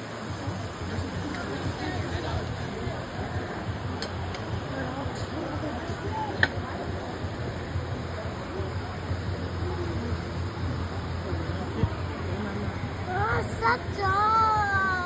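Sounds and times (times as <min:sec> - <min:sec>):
background chatter: 0:00.0 - 0:15.0.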